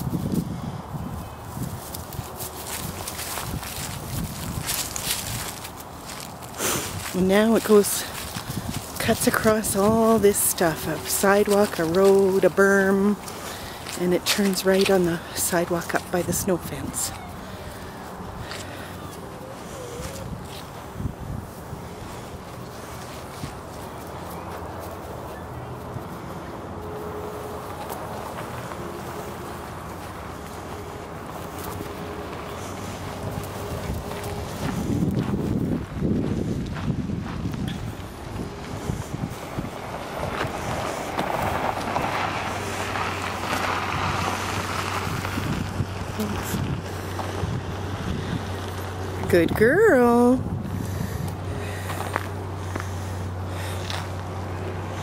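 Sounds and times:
wind on microphone: 0.0 - 11.1, 17.0 - 23.7, 32.6 - 52.8
vehicle engine running: 2.1 - 55.0.

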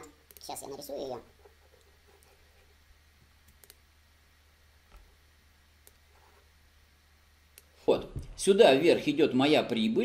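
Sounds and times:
computer mouse clicks: 0.2 - 0.5, 3.4 - 3.8, 5.8 - 6.0.

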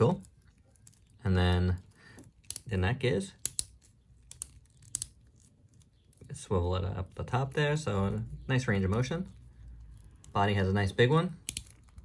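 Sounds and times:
plastic clicks of figure joint: 2.1 - 2.7, 3.4 - 6.3, 11.4 - 12.0.

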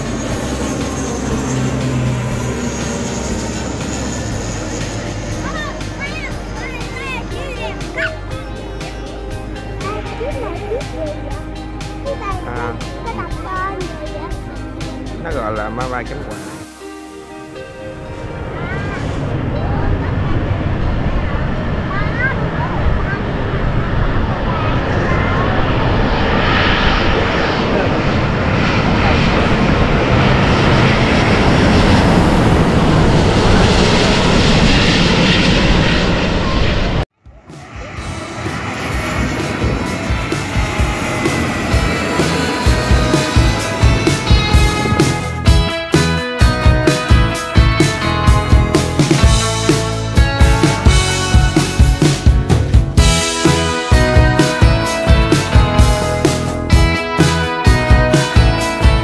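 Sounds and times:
jet airplane roar overhead: 0.0 - 59.0
background music with percussive beats: 1.3 - 17.7, 38.8 - 59.0.

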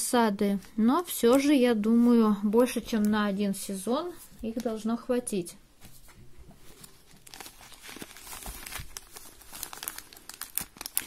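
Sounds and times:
plastic packaging crinkling: 6.6 - 11.0.

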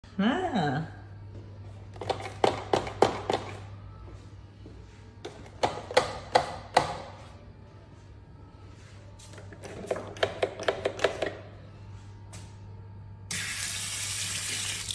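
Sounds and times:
water running into sink: 13.3 - 14.9.

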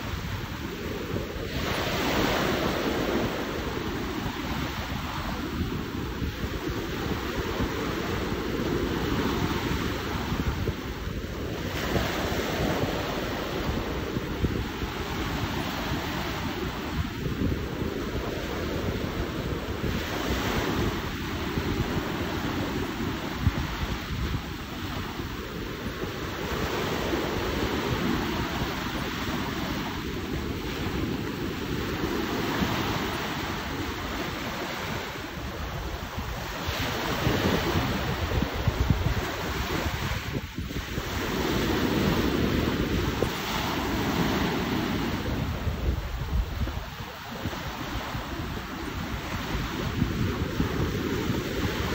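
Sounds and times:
small waves washing on shore: 0.0 - 51.9
wind buffeting microphone: 0.0 - 51.9.

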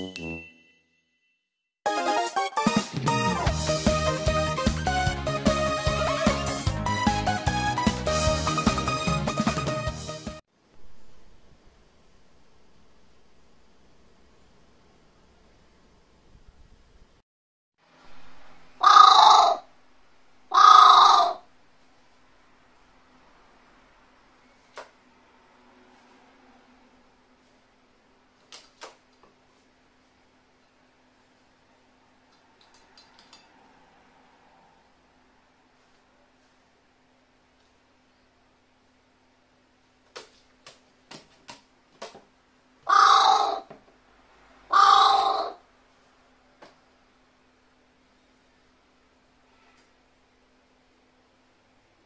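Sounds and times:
crow cawing harshly: 18.8 - 19.7, 20.5 - 21.5, 42.8 - 43.7, 44.7 - 45.6.

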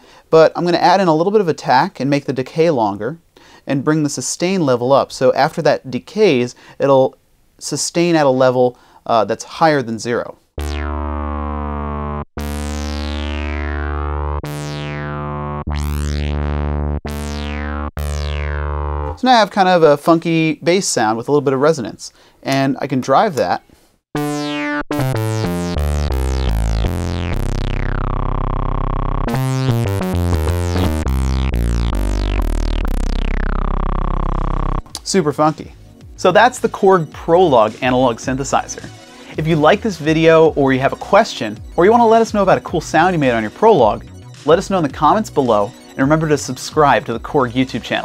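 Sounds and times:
synthesizer bass line: 10.6 - 19.4, 24.1 - 48.0.

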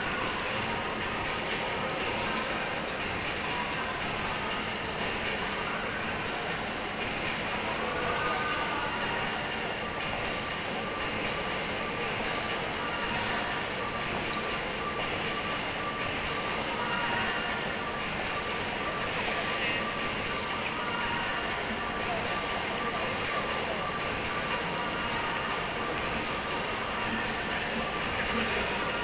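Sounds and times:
faint steady tones: 0.0 - 29.0
indistinct voices: 0.0 - 29.0
indoor hubbub: 0.0 - 29.0.

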